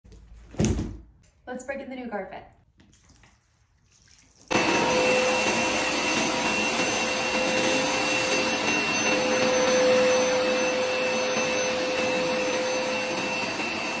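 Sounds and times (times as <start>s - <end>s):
carpet cleaner motor whine: 4.5s - 14.0s.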